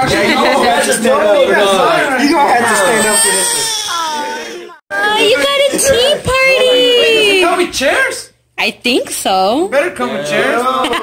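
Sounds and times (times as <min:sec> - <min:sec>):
baby crying: 0:02.6 - 0:04.8.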